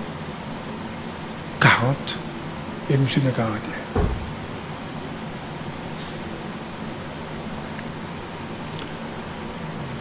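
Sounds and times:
steady background hiss: 0:00.0 - 0:10.0
low thump: 0:04.0 - 0:04.4.

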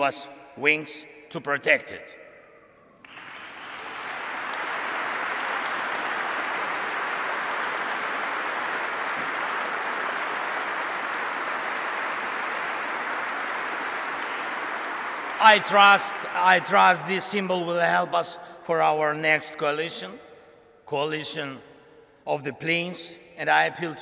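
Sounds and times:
large audience applauding: 0:03.0 - 0:17.2.

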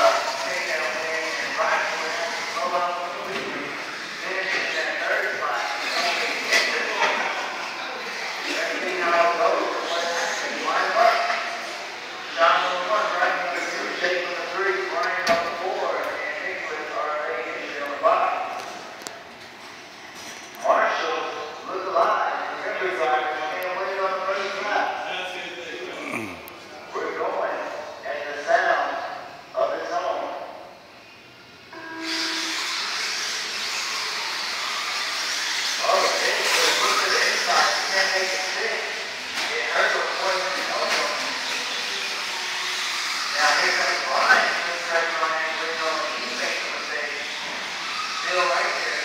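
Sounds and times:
rc cars whining: 0:00.0 - 0:15.0, 0:31.8 - 0:49.0.

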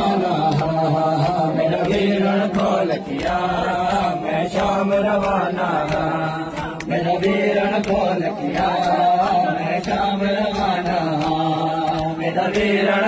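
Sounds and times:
hands slapping chests: 0:00.0 - 0:13.0
men chanting a lament: 0:00.0 - 0:13.0.

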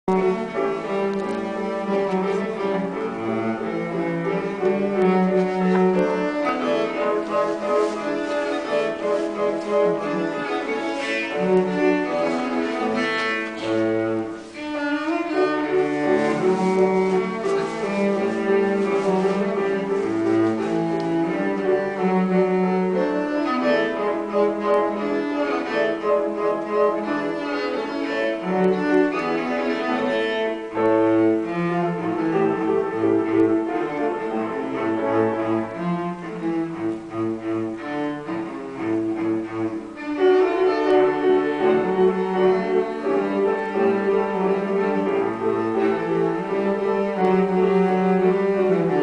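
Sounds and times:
cello melody: 0:00.0 - 0:49.0
piano accompaniment: 0:00.0 - 0:49.0.

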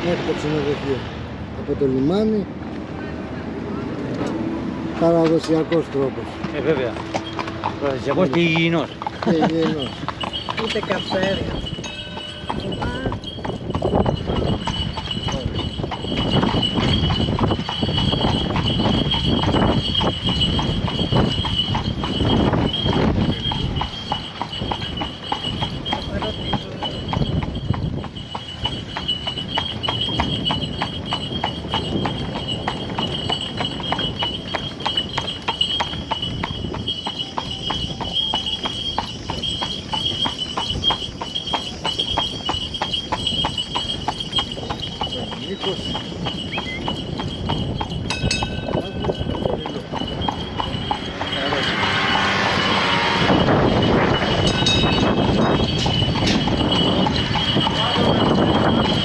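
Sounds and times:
horse hooves clip-clopping on asphalt: 0:04.0 - 0:59.0.

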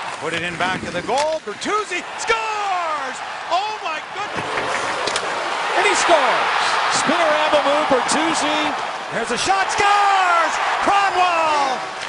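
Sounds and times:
television announcer speaking: 0:00.3 - 0:04.4, 0:05.7 - 0:11.8
crowd cheering and applauding: 0:01.9 - 0:12.0.

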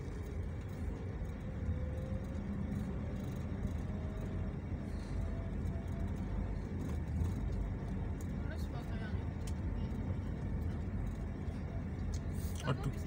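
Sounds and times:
vehicle engine and tyres rumbling: 0:00.0 - 0:13.0.

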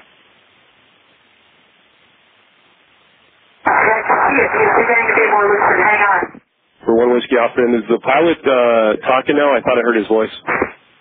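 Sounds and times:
radio channel hiss: 0:00.0 - 0:11.0.

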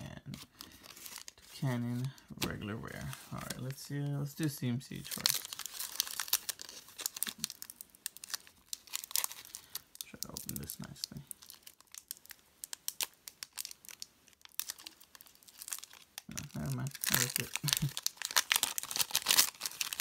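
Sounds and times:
foil wrapper crinkling and tearing: 0:00.3 - 0:20.0.

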